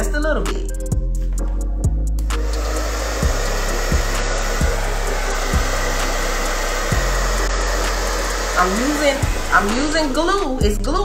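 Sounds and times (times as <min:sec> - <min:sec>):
music with deep bass beat: 0:00.0 - 0:11.0
hair dryer blowing: 0:02.2 - 0:11.0.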